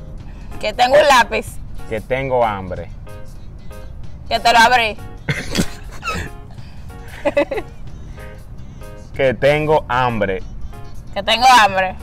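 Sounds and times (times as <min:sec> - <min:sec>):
quiet background music: 0:00.0 - 0:12.0
person laughing: 0:05.3 - 0:07.8.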